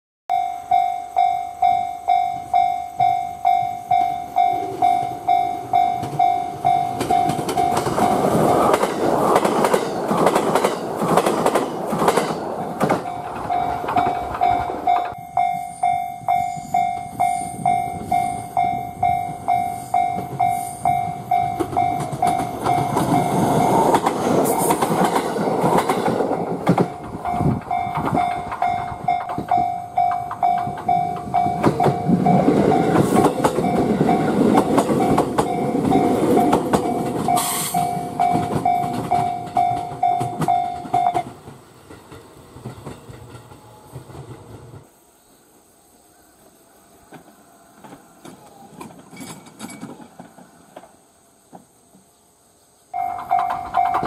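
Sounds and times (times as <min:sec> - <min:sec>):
pulsing ringing tone: 0:00.3 - 0:08.7, 0:13.1 - 0:24.1, 0:26.3 - 0:41.2, 0:53.0 - 0:54.0
train approaching: 0:00.3 - 0:54.0
train passing at speed: 0:00.3 - 0:54.0
train wheels over switch rails: 0:01.2 - 0:44.9, 0:47.1 - 0:52.0, 0:53.0 - 0:54.0.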